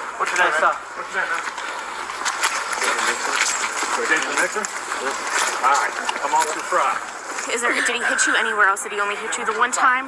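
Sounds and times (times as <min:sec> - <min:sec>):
footsteps: 0:00.2 - 0:08.7.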